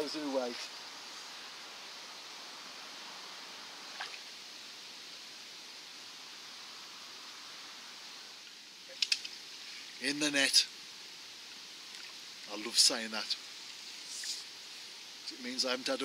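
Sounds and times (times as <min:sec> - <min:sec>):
faint outdoor hiss: 0:00.0 - 0:16.0.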